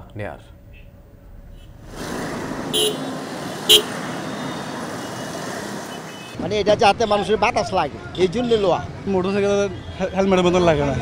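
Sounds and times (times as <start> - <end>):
road traffic: 0.0 - 11.0
vehicle horn toots: 2.7 - 3.1, 3.7 - 4.7.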